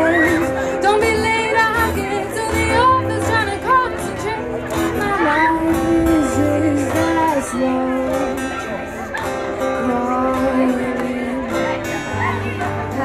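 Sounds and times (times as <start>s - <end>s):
woman singing long notes: 0.0s - 8.8s
strummed acoustic guitars: 0.0s - 13.0s.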